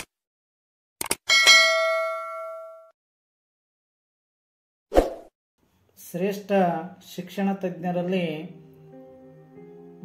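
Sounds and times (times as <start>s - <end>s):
bright bell ding: 1.3s - 2.9s.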